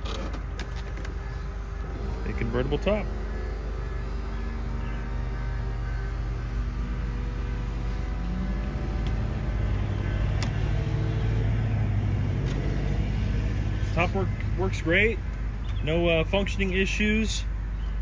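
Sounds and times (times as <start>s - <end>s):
convertible roof motor whine: 0.0s - 18.0s.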